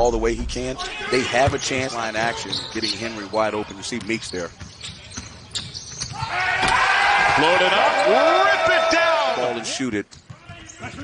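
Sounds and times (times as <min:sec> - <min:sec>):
sneaker squeaks: 0:01.4 - 0:06.3, 0:10.1 - 0:11.0.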